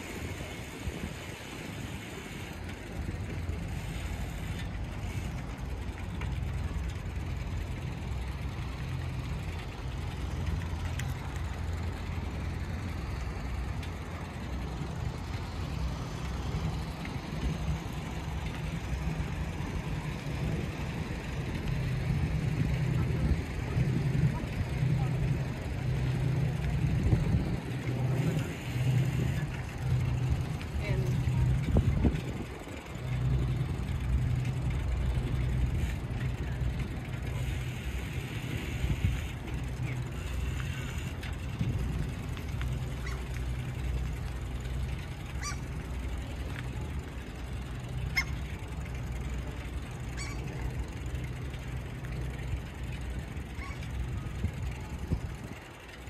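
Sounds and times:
bicycle rolling on pavement: 0:00.0 - 0:56.0.

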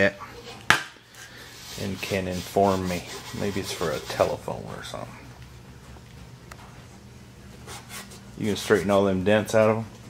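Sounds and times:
steady low hum: 0:00.0 - 0:10.0
cloth rubbing on metal hubcap: 0:01.3 - 0:05.0.

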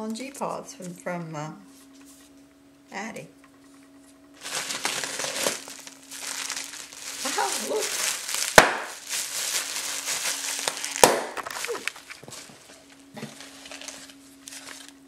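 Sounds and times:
plastic wrapping crinkling: 0:04.4 - 0:15.0.

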